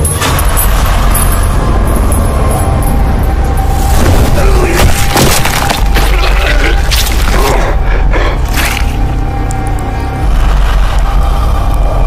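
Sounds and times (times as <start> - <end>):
dark music score with held tone: 0.0 - 12.0.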